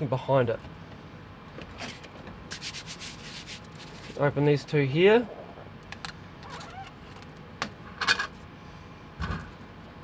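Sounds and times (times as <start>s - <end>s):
air purifier fan hum: 0.0s - 10.0s.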